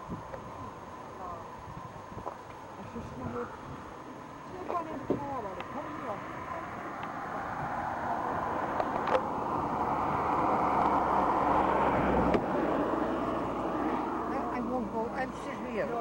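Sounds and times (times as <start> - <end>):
wind on microphone: 0.0 - 4.0, 6.2 - 14.6.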